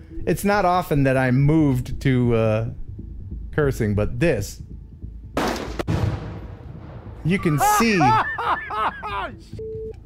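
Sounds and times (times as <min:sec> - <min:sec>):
explosive target blast: 0:05.4 - 0:07.2.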